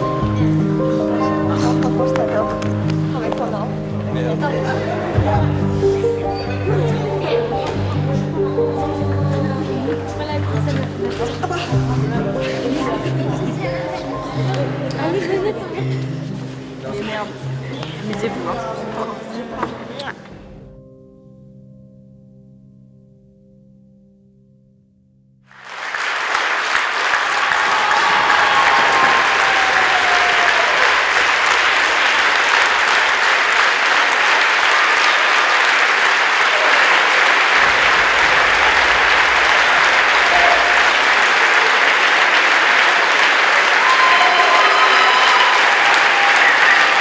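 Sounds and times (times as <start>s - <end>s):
audience applauding: 25.5s - 47.0s.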